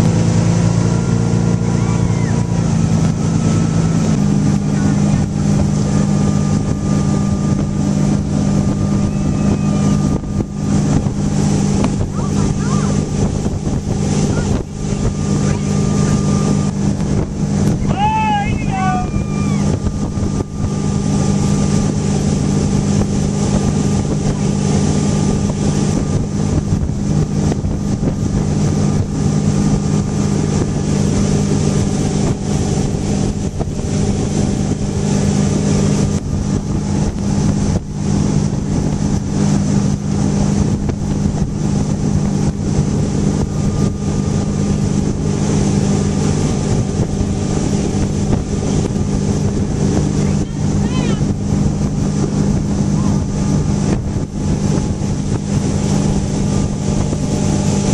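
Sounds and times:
boat engine droning: 0:00.0 - 0:57.9
water and wind rushing: 0:00.0 - 0:57.9.

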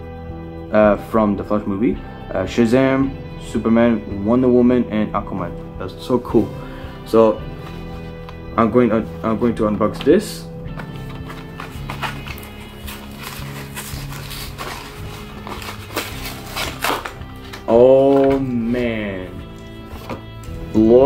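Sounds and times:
background music: 0:00.0 - 0:21.0
plastic blister pack crackling: 0:10.9 - 0:18.8.

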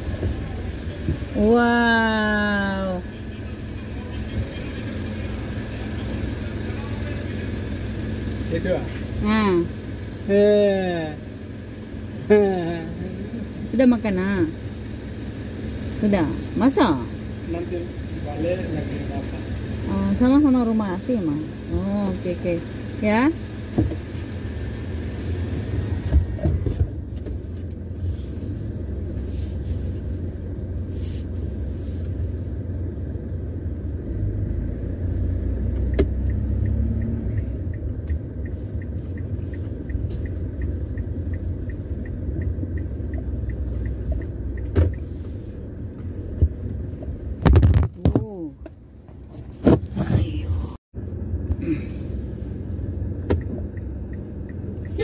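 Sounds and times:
car driving slowly: 0:00.0 - 0:55.0
car bumps: 0:46.3 - 0:50.6.

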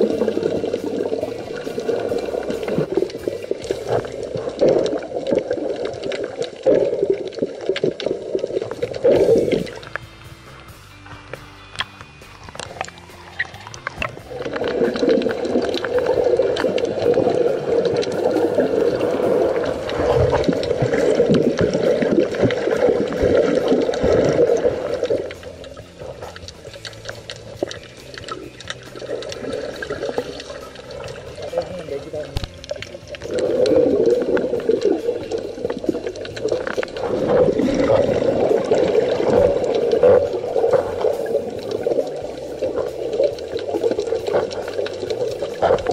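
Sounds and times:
water churning and bubbling underwater: 0:00.0 - 0:45.9.

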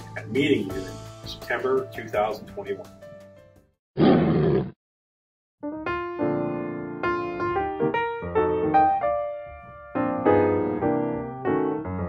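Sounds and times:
background music: 0:00.0 - 0:03.6, 0:05.7 - 0:12.0.

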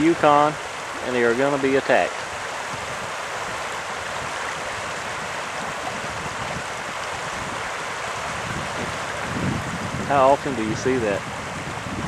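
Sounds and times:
river current rushing: 0:00.0 - 0:12.0
wind buffeting microphone: 0:00.0 - 0:12.0.

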